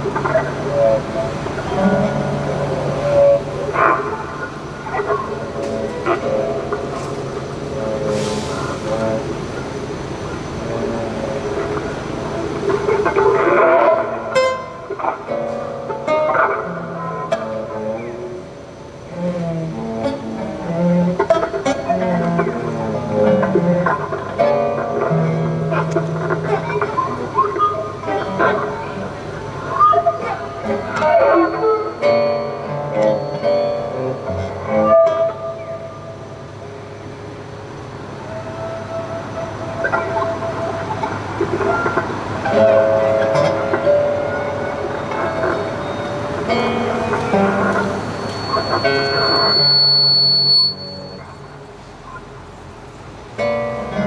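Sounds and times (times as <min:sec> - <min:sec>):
low cello notes: 0:00.0 - 0:37.0
bowed string tones: 0:00.0 - 0:51.7
plucked acoustic guitar notes: 0:00.0 - 0:52.4, 0:53.3 - 0:54.0.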